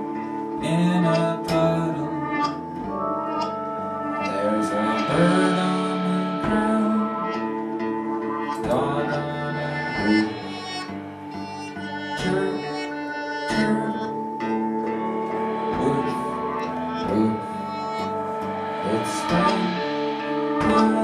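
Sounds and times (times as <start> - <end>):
drums: 0.0 - 12.8, 13.4 - 21.0
rock band playing: 0.0 - 21.0
strummed acoustic guitar: 0.0 - 21.0.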